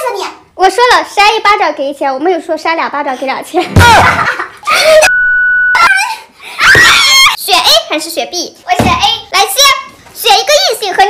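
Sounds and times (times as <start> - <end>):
electronic beep: 5.1 - 5.9.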